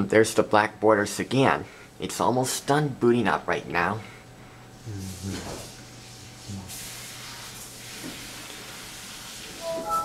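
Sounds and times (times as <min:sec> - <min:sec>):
computer startup chime: 0:09.6 - 0:10.0.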